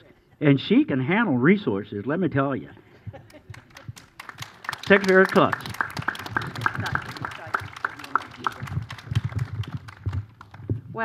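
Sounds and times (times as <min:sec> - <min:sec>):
crowd applauding: 0:03.3 - 0:10.7
microphone handling bumps: 0:08.6 - 0:11.0.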